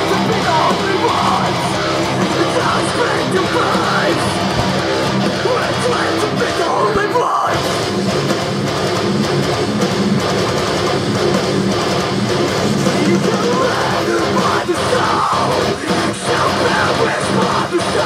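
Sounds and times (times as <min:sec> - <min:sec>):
distorted electric guitar riff: 0:00.0 - 0:18.0.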